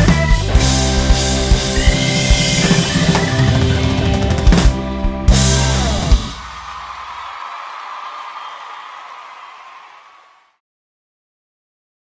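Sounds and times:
hissy stage and crowd noise: 0.0s - 10.6s.

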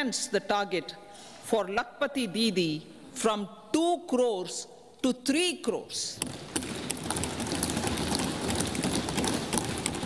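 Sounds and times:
people thumping wooden desks: 6.2s - 10.0s.

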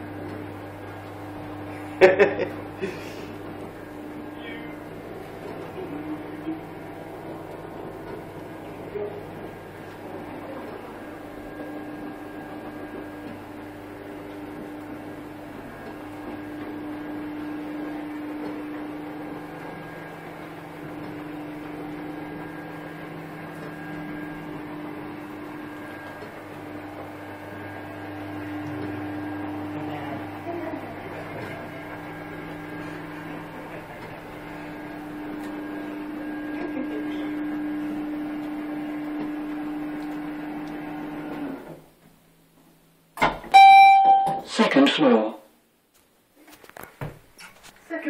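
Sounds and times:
lift machinery humming: 0.0s - 44.5s.

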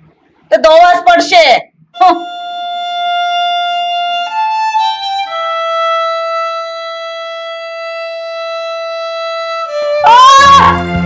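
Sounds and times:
long violin note: 2.0s - 11.0s.

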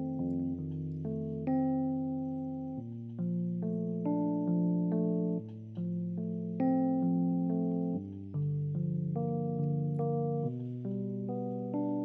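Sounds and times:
electronic keyboard ballad chords: 0.0s - 12.0s.

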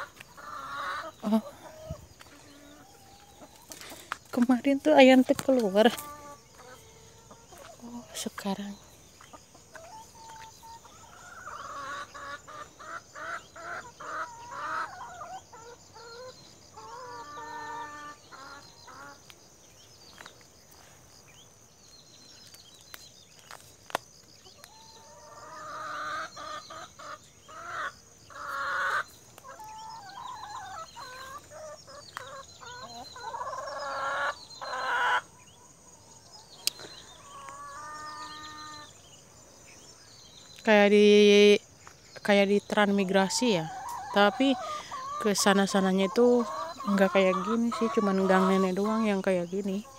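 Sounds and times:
chickens clucking: 0.0s - 21.7s, 22.4s - 49.9s.

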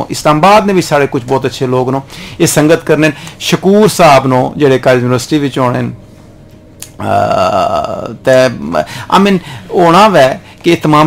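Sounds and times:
man saying aah: 6.9s - 8.8s.

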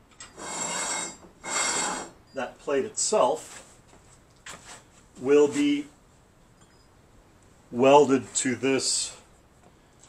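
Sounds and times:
plate scraping against surface: 0.4s - 2.1s.

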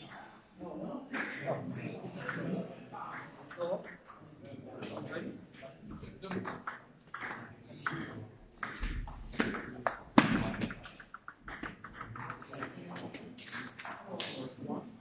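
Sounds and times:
table tennis ball clicking: 9.4s - 12.8s.

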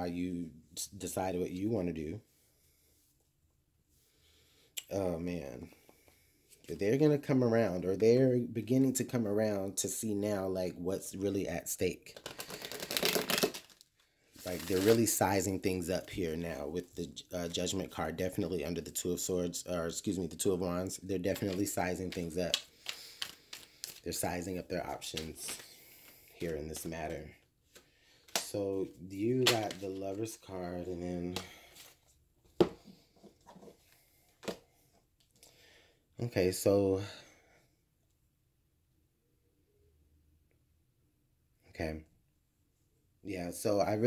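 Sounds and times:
cards being shuffled: 12.1s - 15.2s, 21.2s - 30.4s.

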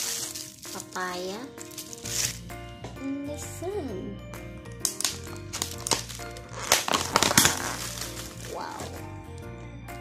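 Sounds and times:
background music: 0.0s - 10.0s
plastic lid crackling: 4.7s - 9.0s.

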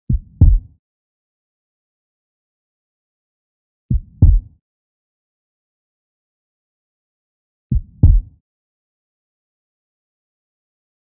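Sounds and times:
heartbeat thumps: 0.1s - 0.7s, 3.9s - 4.6s, 7.7s - 8.4s.

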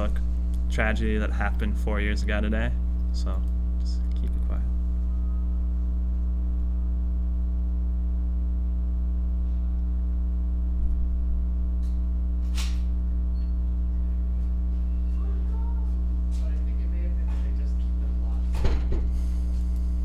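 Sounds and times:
electrical hum: 0.0s - 20.0s.

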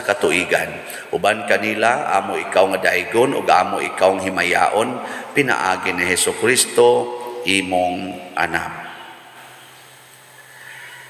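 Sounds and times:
low steady hum: 0.0s - 10.7s.

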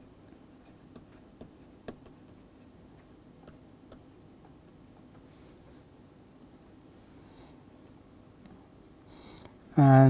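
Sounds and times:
stylus scratching on screen: 0.2s - 2.8s.

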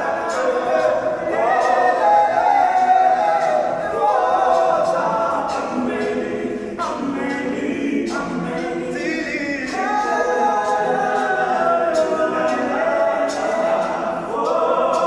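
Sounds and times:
male voices singing in harmony: 0.0s - 15.0s.

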